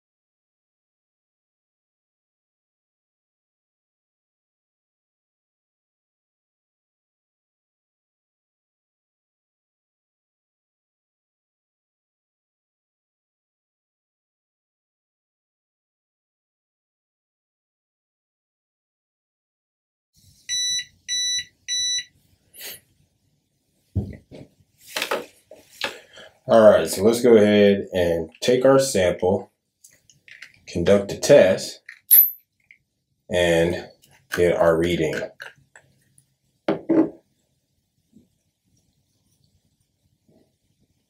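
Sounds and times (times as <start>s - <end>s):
short electronic beeps: 20.5s - 22.1s
faint handling noises: 24.0s - 26.1s, 29.8s - 30.7s.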